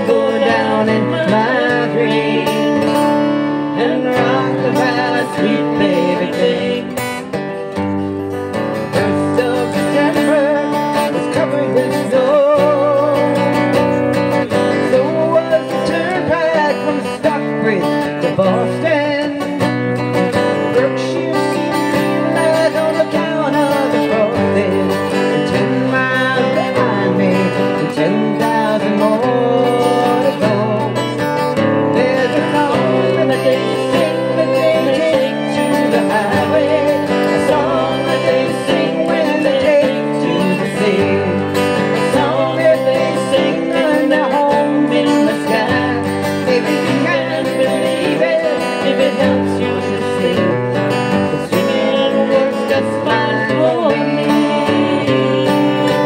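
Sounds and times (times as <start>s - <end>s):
bass guitar: 0.0s - 56.0s
strummed acoustic guitar: 0.0s - 56.0s
fiddle melody: 20.0s - 56.0s.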